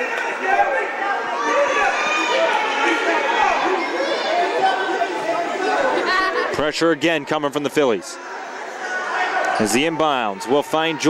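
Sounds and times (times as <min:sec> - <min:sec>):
crowd chatter in a hall: 0:00.0 - 0:11.0.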